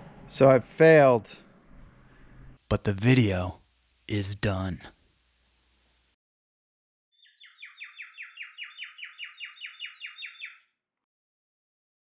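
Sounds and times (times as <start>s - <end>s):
bird trilling chirps: 7.1s - 10.8s.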